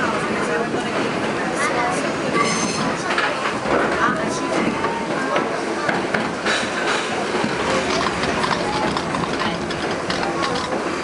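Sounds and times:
subway car rumble: 0:00.0 - 0:11.0
wheels clattering over rail joints: 0:02.3 - 0:11.0.

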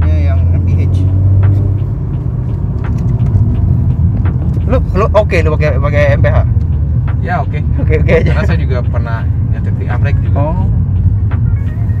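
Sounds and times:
car engine rumble inside cabin: 0:00.0 - 0:12.0
road noise: 0:00.0 - 0:12.0.

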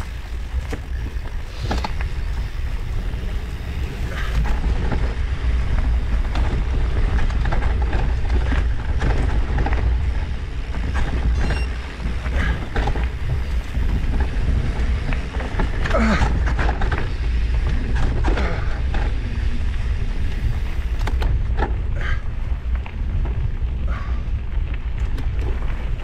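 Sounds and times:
bicycle clicks and rattles: 0:00.0 - 0:26.0
wind buffeting microphone: 0:00.0 - 0:26.0.

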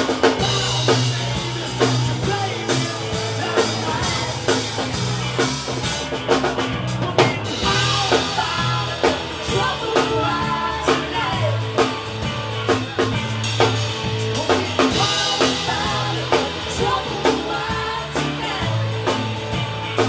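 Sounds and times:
drum kit beat: 0:00.0 - 0:20.0
rock band playing live: 0:00.0 - 0:20.0.

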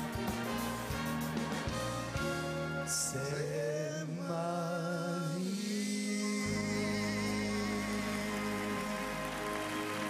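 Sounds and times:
audience applause: 0:07.2 - 0:10.0.

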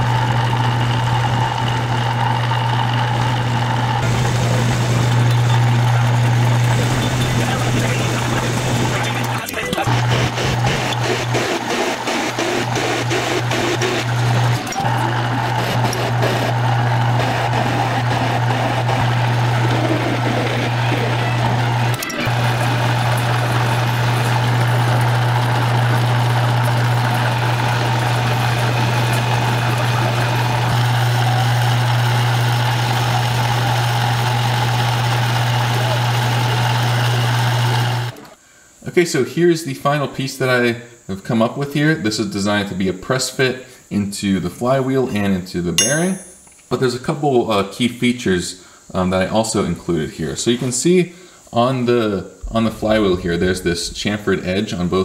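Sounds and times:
metal lathe running: 0:00.0 - 0:38.3.

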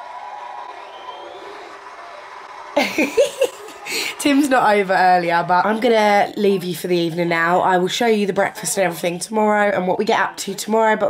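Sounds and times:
woman laughing: 0:02.8 - 0:04.4.

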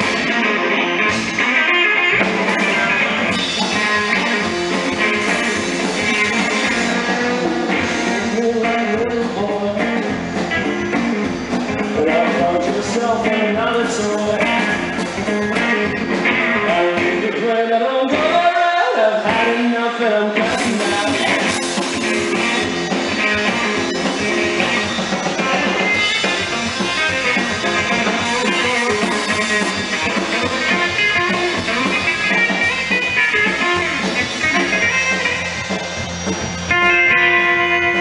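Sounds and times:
drum kit: 0:00.0 - 0:38.0
electric guitar: 0:00.0 - 0:38.0
upright double bass: 0:02.1 - 0:17.6.

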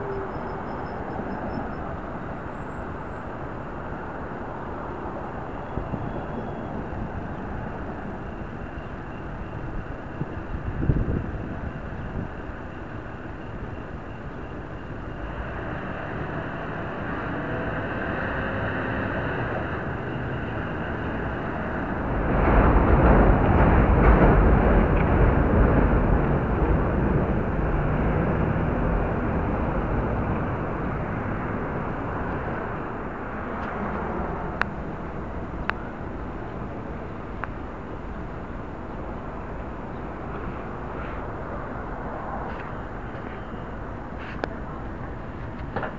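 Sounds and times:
city street traffic: 0:00.0 - 0:45.9.

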